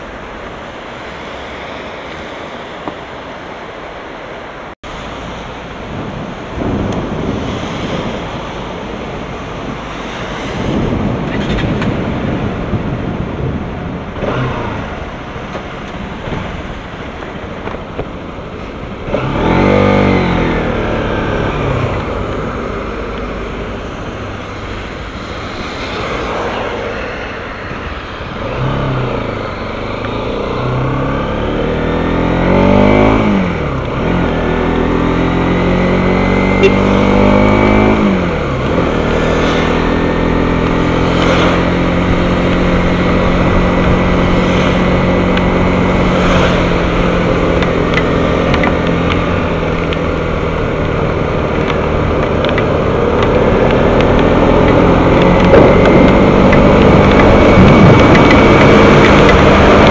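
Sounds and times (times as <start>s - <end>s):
tyres hissing on wet road: 0.0s - 59.9s
motorcycle engine revving through gears: 10.0s - 18.0s, 18.9s - 27.0s, 28.2s - 59.9s
lorry engine: 40.5s - 59.9s.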